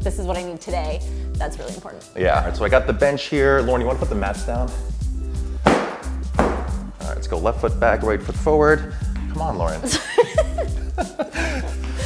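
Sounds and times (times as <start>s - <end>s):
background music: 0.0s - 12.0s
foam mats slapping floor: 5.6s - 6.8s.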